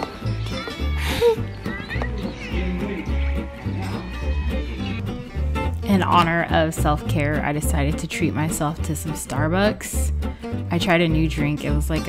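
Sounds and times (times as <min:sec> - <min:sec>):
music with steady bass beat: 0:00.0 - 0:08.0
child's voice: 0:00.4 - 0:01.4.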